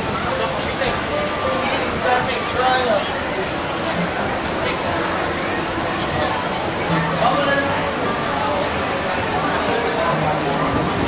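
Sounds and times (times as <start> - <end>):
ambient noise: 0.0 - 11.0
indistinct voices talking: 0.0 - 11.0.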